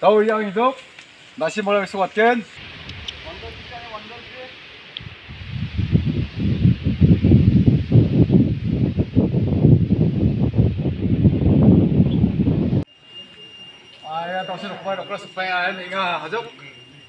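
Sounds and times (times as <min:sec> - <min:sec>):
wind buffeting microphone: 0:02.6 - 0:04.2, 0:05.0 - 0:12.9
faint steady high tone: 0:12.8 - 0:17.0.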